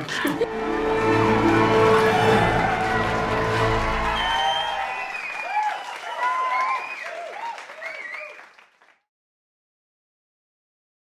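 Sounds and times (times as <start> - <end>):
crowd cheering and clapping: 0.0 - 9.1
outro music: 0.3 - 5.3.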